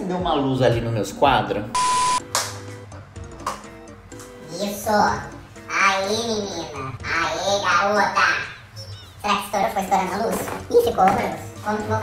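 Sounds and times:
background music with repeating melody: 0:00.0 - 0:12.0
high steady beep: 0:01.8 - 0:02.2.

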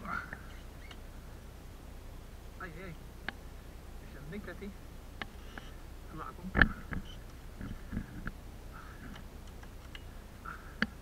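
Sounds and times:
soft breaths: 0:05.2 - 0:06.0, 0:06.6 - 0:09.3, 0:10.0 - 0:11.0.

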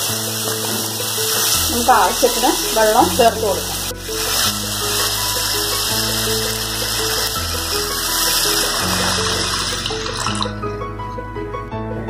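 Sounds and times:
water pouring into a pan: 0:00.0 - 0:10.6
background music: 0:00.0 - 0:12.0.

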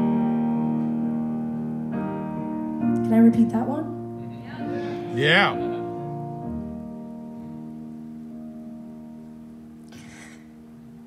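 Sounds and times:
held instrumental chord ringing: 0:00.0 - 0:09.8
person singing: 0:04.8 - 0:05.6.

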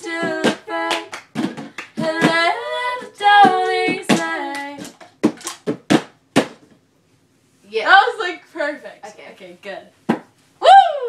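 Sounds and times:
women singing a cappella: 0:00.0 - 0:04.9.

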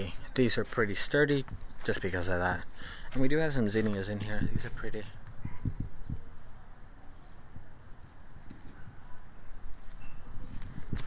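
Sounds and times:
faint outdoor rumble: 0:00.0 - 0:11.0
soft low thumps from walking: 0:00.6 - 0:02.3, 0:03.1 - 0:06.3.

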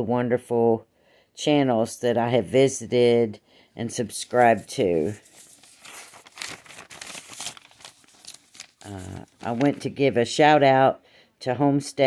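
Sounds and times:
woman talking: 0:01.4 - 0:05.2, 0:08.8 - 0:12.0
crinkling and rustling: 0:04.2 - 0:10.1.

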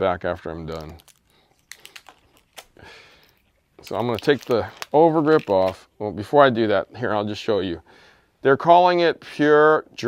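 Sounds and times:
fingers peeling plastic wrap: 0:00.2 - 0:05.9.

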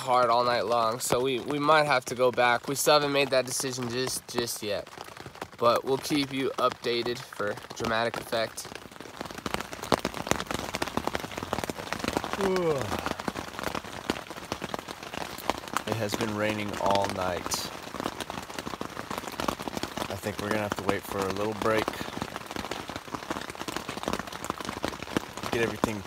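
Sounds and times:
heavy rain on tent fabric: 0:00.0 - 0:26.0.

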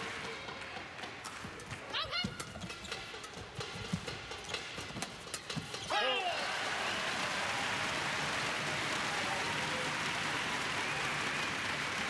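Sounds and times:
indoor crowd noise: 0:00.0 - 0:12.0.

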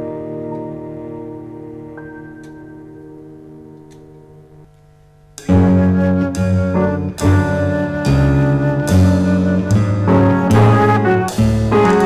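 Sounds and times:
chamber ensemble chord: 0:05.5 - 0:12.0.

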